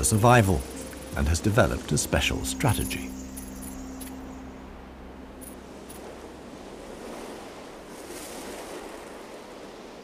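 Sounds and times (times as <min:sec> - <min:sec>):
wind blowing across sand: 0:05.4 - 0:10.0.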